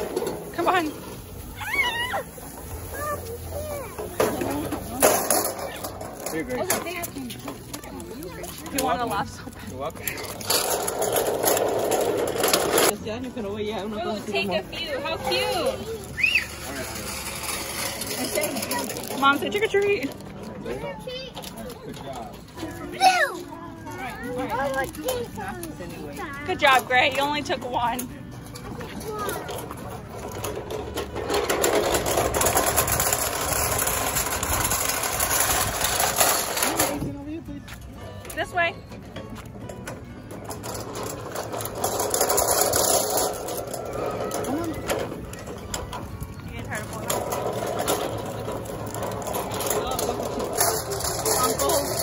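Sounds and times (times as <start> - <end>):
wagon wheels rattling over bricks: 0.0 - 37.5, 38.2 - 52.0.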